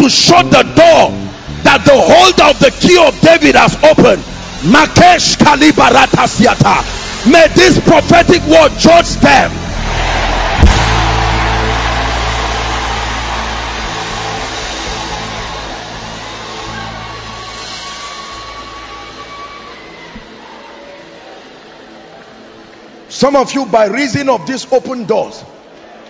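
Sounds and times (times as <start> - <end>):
cinematic boom drone: 10.0 - 18.6.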